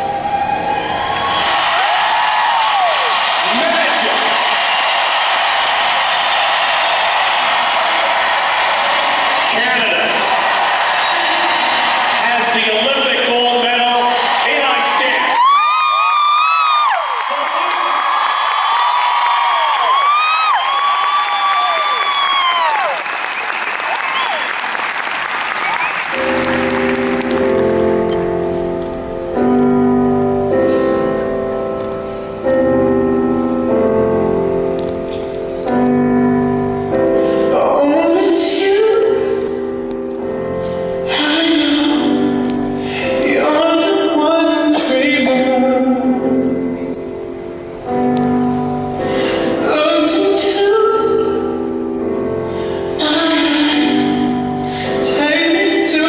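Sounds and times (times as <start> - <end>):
high-pitched screams and whoops: 0.0 - 9.2, 14.1 - 24.7
audience cheering and applauding: 0.0 - 29.0
piano music: 24.7 - 56.0.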